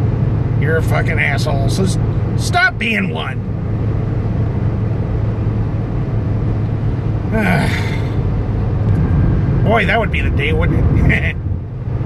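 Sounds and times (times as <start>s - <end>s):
car cabin engine and tyre hum: 0.0s - 12.0s.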